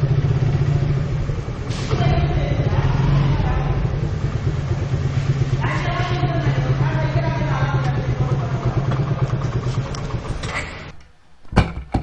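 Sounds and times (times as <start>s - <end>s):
motorcycle engine running: 0.0s - 10.7s.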